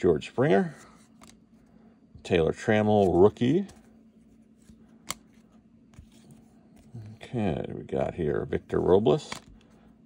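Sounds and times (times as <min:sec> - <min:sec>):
faint steady hum: 0:00.0 - 0:10.0
cards flipped by hand: 0:01.0 - 0:01.4, 0:02.9 - 0:06.9.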